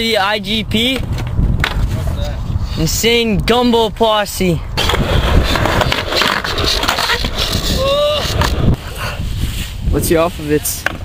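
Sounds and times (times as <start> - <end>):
skateboard rolling on concrete: 0.4 - 2.4, 4.8 - 11.0.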